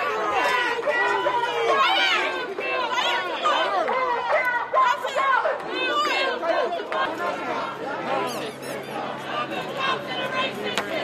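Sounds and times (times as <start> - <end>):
crowd talking and shouting: 0.0 - 11.0.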